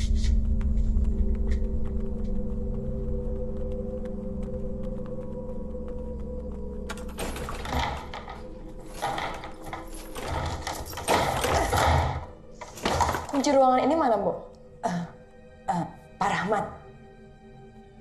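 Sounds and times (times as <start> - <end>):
locked wooden door rattling: 6.9 - 13.7.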